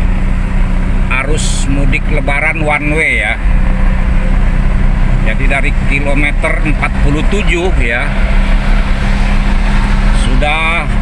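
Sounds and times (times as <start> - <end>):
car engine and road noise: 0.0 - 11.0
constant low hum: 0.0 - 11.0.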